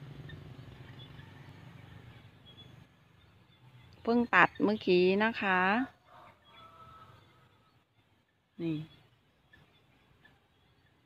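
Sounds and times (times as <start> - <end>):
low steady rumble: 0.0 - 5.8
bird chirps: 0.0 - 11.0.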